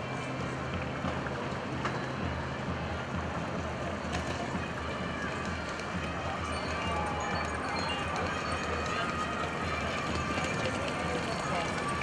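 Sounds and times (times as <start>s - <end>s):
luggage trolley rumbling and clicking: 5.2s - 12.0s
wheeled suitcases rolling on hard floor: 5.2s - 12.0s.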